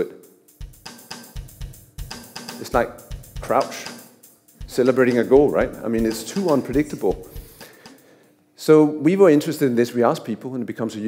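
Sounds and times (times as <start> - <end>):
syncopated funk drum beat: 0.0 - 8.2.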